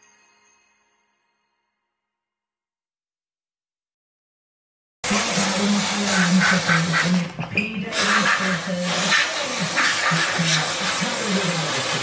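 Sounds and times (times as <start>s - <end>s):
steam cleaner hissing: 5.0s - 12.0s.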